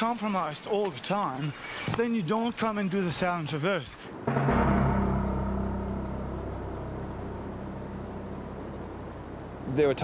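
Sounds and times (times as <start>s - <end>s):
low rumbling film score note: 4.2s - 10.0s.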